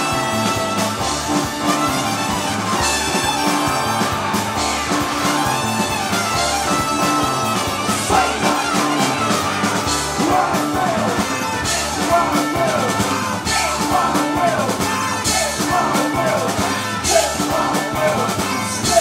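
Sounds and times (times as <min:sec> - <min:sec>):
live rock band with horns: 0:00.0 - 0:19.0.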